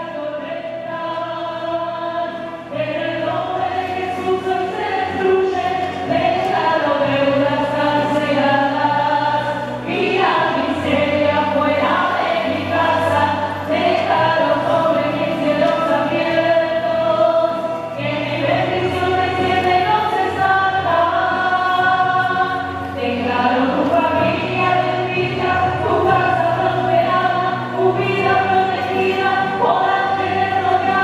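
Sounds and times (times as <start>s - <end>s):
choir singing a hymn: 0.0s - 31.0s.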